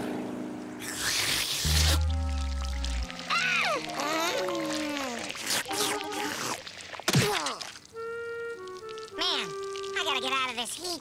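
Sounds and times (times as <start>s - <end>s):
falling comic sound effect: 0.9s - 6.6s
held music notes: 1.6s - 5.1s.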